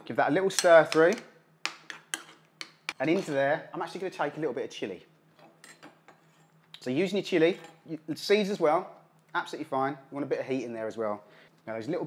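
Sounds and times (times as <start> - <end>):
metal spoon stirring in ceramic bowl: 1.7 - 3.3.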